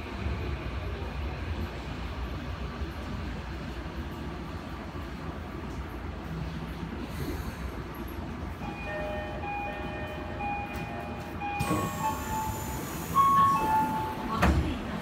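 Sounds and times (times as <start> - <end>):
subway train rumble: 0.0 - 15.0.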